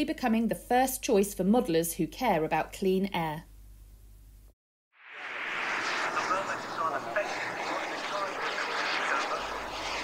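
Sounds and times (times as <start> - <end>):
model jet engine roar: 5.0 - 10.0.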